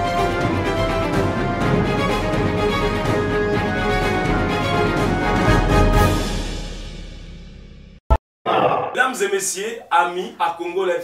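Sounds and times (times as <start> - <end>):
news intro theme music: 0.0 - 7.9
man's voice: 8.5 - 11.0.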